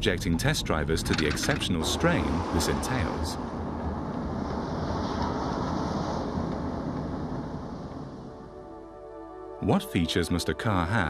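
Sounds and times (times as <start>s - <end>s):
tyres rolling on asphalt: 0.0s - 9.0s.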